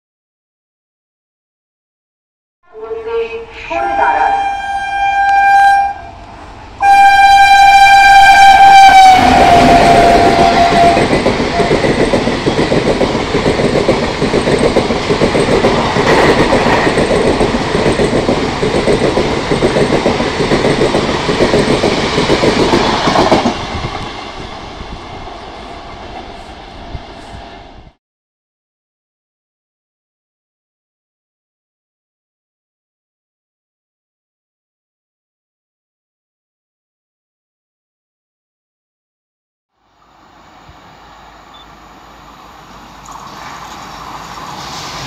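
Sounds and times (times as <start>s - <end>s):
locomotive horn blasts: 2.7s - 6.2s, 6.8s - 11.1s
train coaches rushing and clattering: 6.2s - 27.9s, 40.8s - 45.0s.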